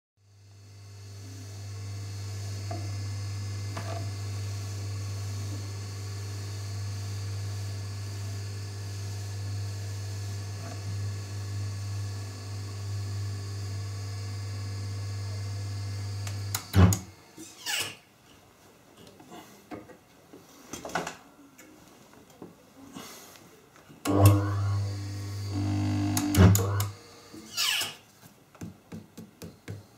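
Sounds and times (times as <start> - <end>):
motor humming: 24.1 - 27.6.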